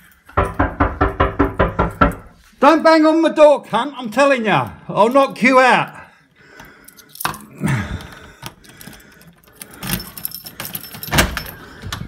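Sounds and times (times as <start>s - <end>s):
door rattling with metallic clinks: 0.0s - 2.8s, 6.6s - 12.0s
knock on front door: 0.4s - 2.3s.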